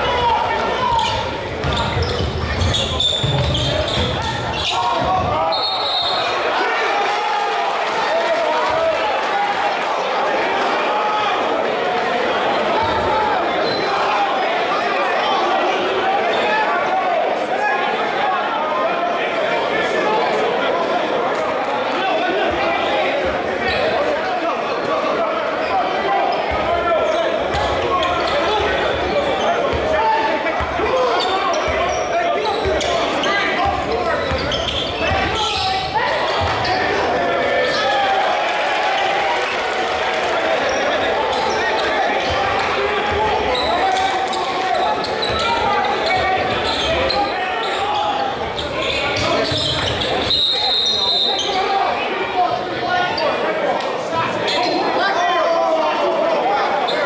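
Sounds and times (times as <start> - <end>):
spectators talking and calling out: 0.0 - 57.0
basketball bouncing on hardwood: 1.6 - 4.3.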